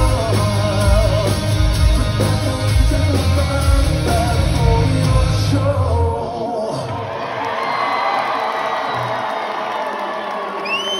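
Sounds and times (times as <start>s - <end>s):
crowd cheering and screaming: 5.9s - 10.9s.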